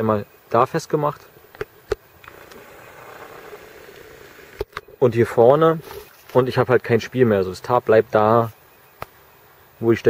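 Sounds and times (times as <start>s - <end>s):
faint steady hum: 0.0s - 10.0s
light rustling hiss: 0.0s - 10.0s.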